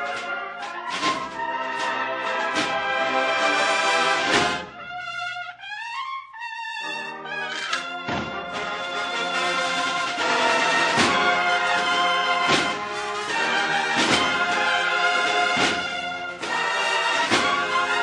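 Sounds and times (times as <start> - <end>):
snare and bass drums: 0.0 - 3.1, 8.0 - 18.0
bugles playing march melody: 0.0 - 18.0.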